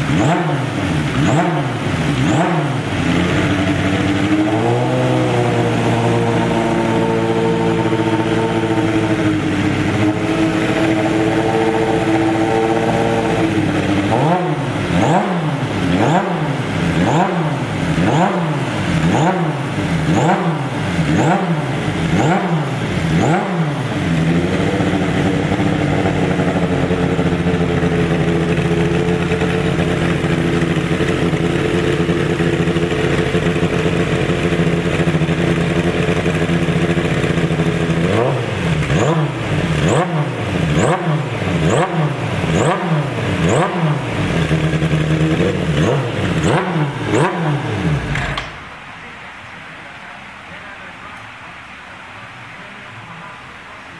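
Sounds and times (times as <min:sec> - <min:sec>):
motorcycle engine revving: 0:00.0 - 0:48.7.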